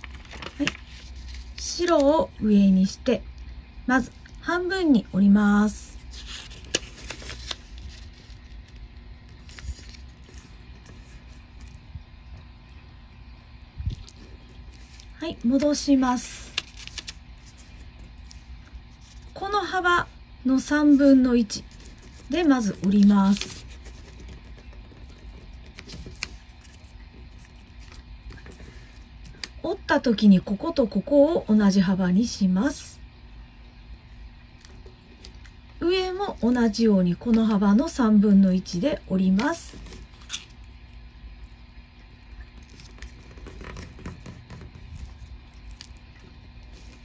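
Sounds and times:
paper rustling and crackling: 0.0 - 2.2, 5.9 - 11.9, 14.0 - 19.4, 21.4 - 29.5, 42.4 - 47.0
light ticks of paper: 16.4 - 19.2, 21.7 - 29.6.

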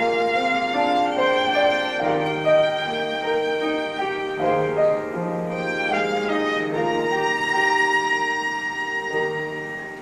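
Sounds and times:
piano accompaniment: 0.0 - 10.0
violin playing slow melody: 0.0 - 10.0.

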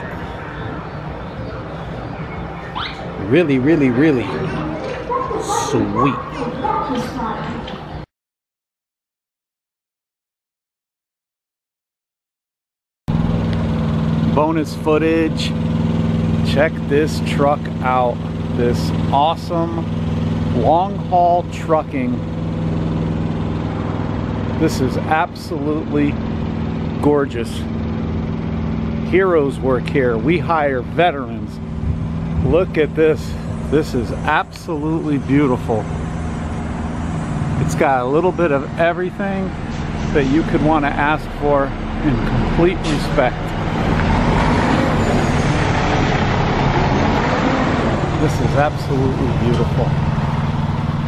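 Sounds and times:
diesel truck engine idling: 0.0 - 8.0, 13.1 - 51.0.

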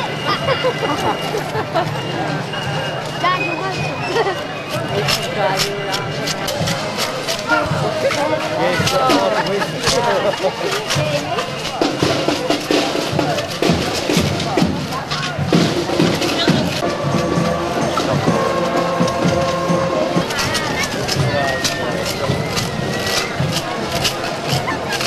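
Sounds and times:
crowd chatter: 0.0 - 25.0
procession music: 15.5 - 25.0.

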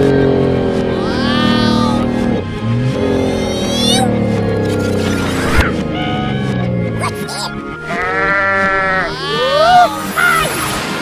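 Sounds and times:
cartoon bleating sound effect: 7.0 - 10.4.

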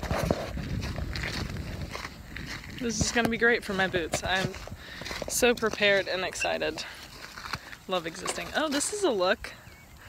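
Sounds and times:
footsteps on gravel: 0.0 - 9.6
wind buffeting microphone: 0.0 - 10.0.

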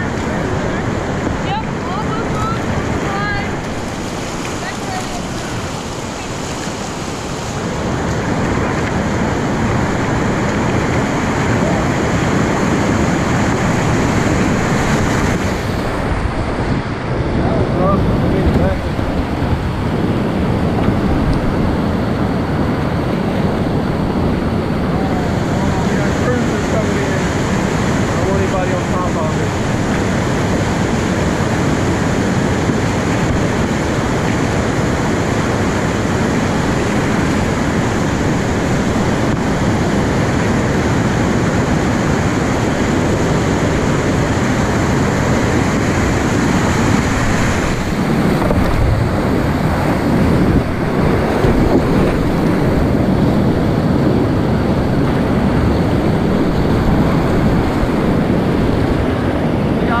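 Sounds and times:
whitewater rapids rushing: 0.0 - 60.0.

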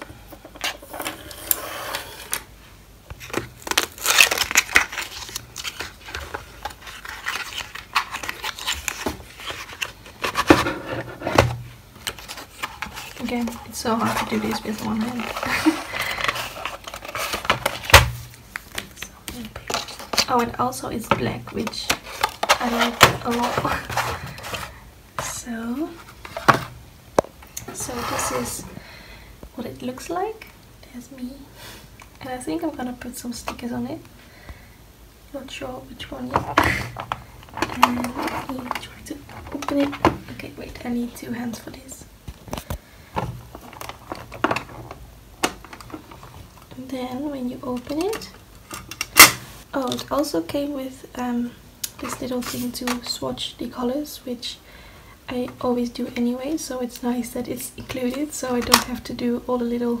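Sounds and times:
cardboard box rustling and scraping: 3.2 - 18.3, 22.1 - 24.8, 27.7 - 28.7.

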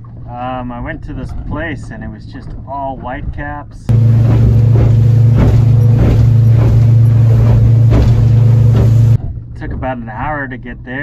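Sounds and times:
boat engine droning: 3.9 - 9.2
water splashing: 3.9 - 9.2
hull thumping on waves: 3.9 - 9.4.

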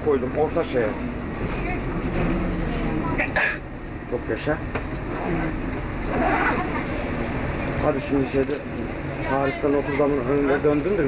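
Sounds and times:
bus engine rumble: 0.0 - 11.0
murmur of voices: 0.0 - 11.0.

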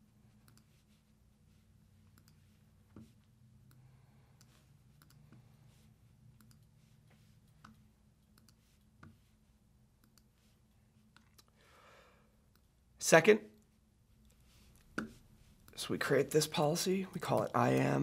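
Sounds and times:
low room hum: 0.0 - 18.0
computer mouse clicks: 0.4 - 0.7, 2.1 - 3.8, 4.4 - 5.4, 6.4 - 6.7, 7.5 - 9.2, 10.0 - 10.4.

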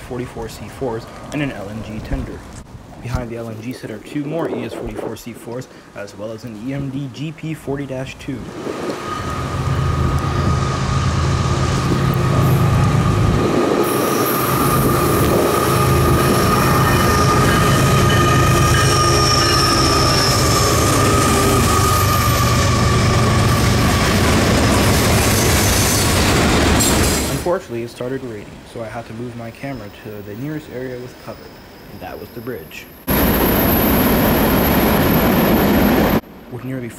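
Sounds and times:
diesel locomotive engines running: 8.7 - 27.5
high-pitched wheel squeal: 9.0 - 26.2.

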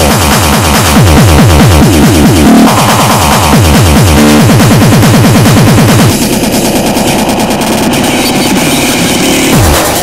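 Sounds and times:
hardcore electronic music: 0.0 - 10.0
rapid kick drum rolls: 0.0 - 10.0.

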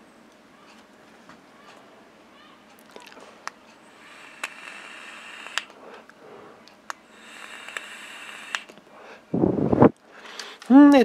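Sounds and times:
soft hiss of air draw: 3.8 - 10.7.

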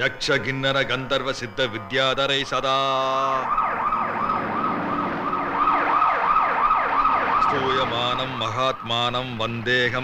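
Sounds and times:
police siren wailing: 2.0 - 10.0.

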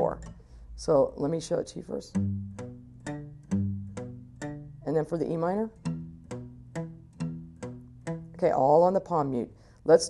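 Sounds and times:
palm-muted acoustic guitar notes: 0.0 - 9.4.

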